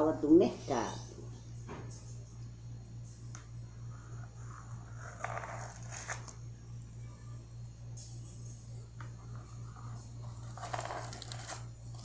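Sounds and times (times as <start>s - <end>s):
low hum: 0.0s - 12.0s
knife scraping soap: 4.5s - 6.3s.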